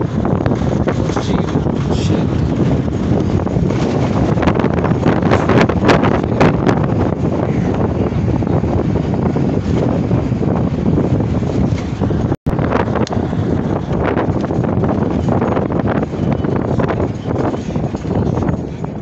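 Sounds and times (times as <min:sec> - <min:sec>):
bus rumbling: 0:00.0 - 0:19.0
wind buffeting microphone: 0:00.0 - 0:19.0.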